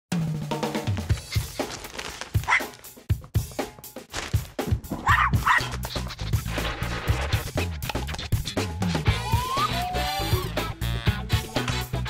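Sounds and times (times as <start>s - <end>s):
music with driving drum beat: 0.1s - 12.0s
small dog barking: 2.4s - 2.8s, 5.0s - 5.7s.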